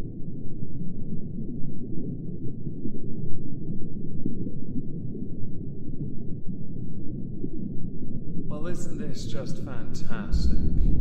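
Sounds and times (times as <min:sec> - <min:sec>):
deep muffled sci-fi rumble: 0:10.3 - 0:11.0.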